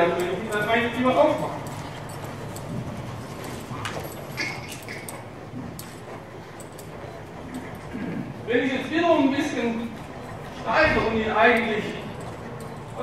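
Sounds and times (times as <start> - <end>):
horse hooves on sand: 0.9 - 7.9.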